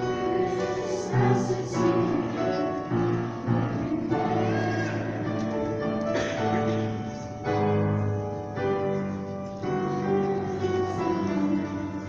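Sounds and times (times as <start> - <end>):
teenage choir singing: 0.0 - 9.0, 9.6 - 12.0
piano: 0.0 - 12.0.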